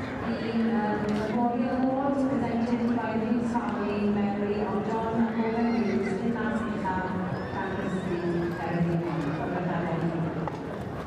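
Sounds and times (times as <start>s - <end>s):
voices: 0.0s - 10.4s
horse neighing: 5.4s - 6.2s.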